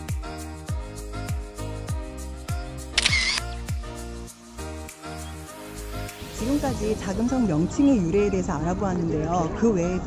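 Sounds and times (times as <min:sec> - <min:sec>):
camera shutter click: 0:03.0 - 0:03.5.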